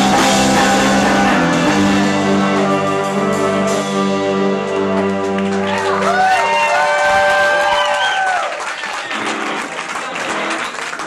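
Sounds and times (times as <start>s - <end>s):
rock band playing: 0.0s - 11.0s
audience applause: 4.8s - 11.0s.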